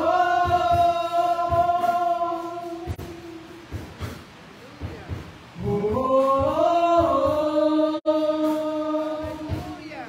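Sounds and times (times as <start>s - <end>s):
low drum beat: 0.0s - 10.0s.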